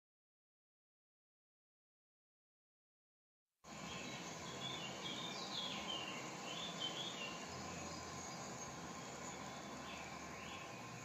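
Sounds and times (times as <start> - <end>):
insect hiss: 3.7 - 11.0
bird chirps: 3.8 - 11.0.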